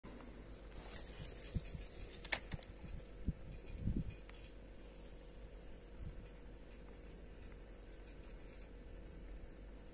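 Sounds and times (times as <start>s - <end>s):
sharp click: 2.1s - 2.7s.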